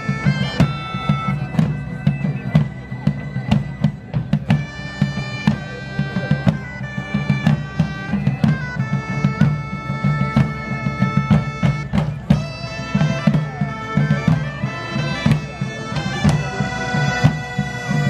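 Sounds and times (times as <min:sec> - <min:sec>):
bagpipes melody with drone: 0:00.0 - 0:18.0
field drums beating: 0:00.0 - 0:18.0.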